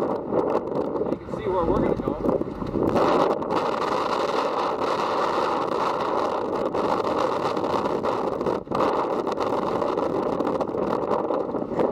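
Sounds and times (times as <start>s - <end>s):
vehicle engine and drive noise: 0.0s - 11.9s.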